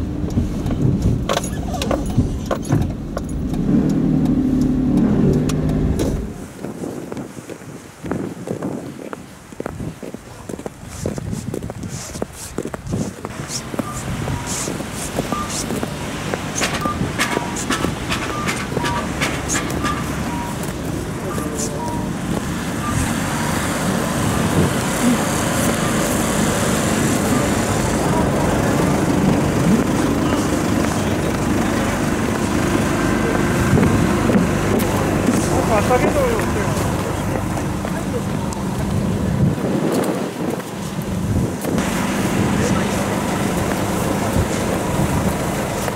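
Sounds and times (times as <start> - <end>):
machinery engines rumbling: 0.0 - 7.3, 10.2 - 45.9
footsteps on packed snow: 6.4 - 16.8
distant voices: 13.3 - 39.5, 41.8 - 45.9.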